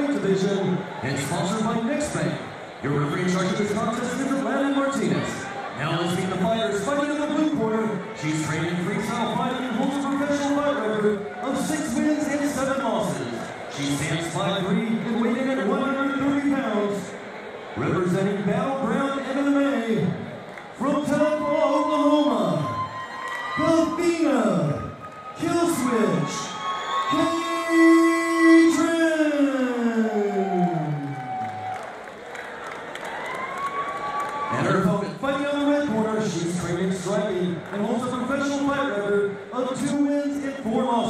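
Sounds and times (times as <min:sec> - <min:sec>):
man announcing over loudspeaker: 0:00.0 - 0:31.6, 0:34.5 - 0:41.0.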